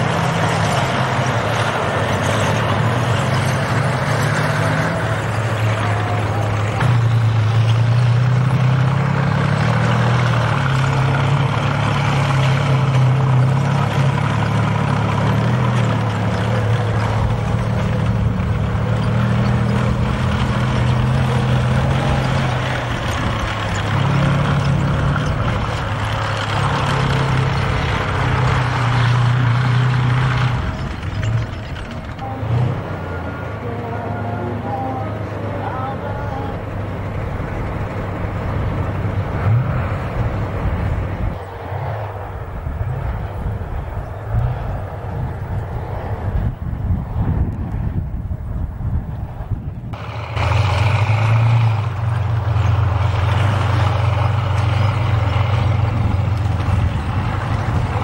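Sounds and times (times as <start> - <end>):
tank diesel engine running: 0.0 - 58.0.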